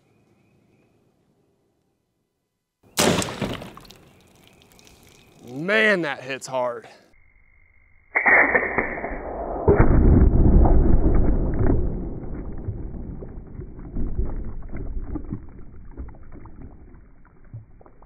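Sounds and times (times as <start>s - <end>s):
pellet hitting plastic water jugs: 3.0s - 4.0s
water spraying and crackling: 3.0s - 5.9s, 11.2s - 18.0s.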